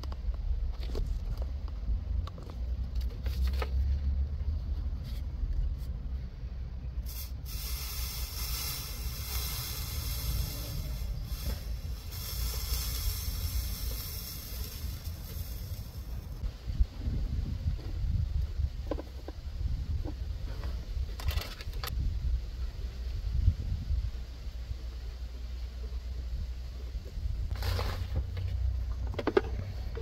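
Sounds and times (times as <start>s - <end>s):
low rumble: 0.0s - 30.0s
soldering hiss: 7.0s - 16.2s.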